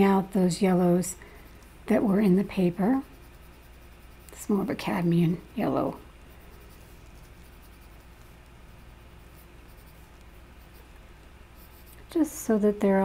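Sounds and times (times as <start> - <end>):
colored pencil rubbing on paper: 1.9 - 10.9, 11.5 - 12.1.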